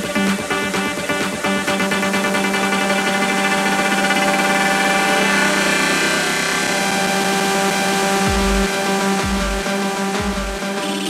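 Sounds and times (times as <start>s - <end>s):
steady low drone: 0.0s - 11.0s
sustained synth chords: 0.0s - 11.0s.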